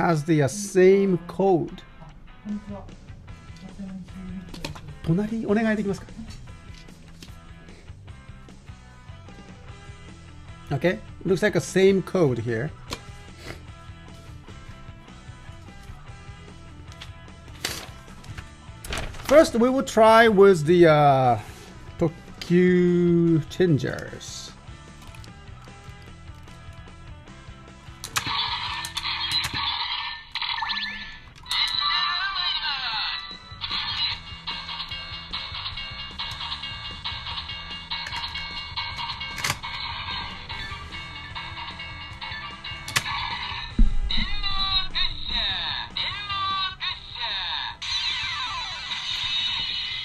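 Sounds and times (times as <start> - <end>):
toy jingle tones: 28.2 - 50.0.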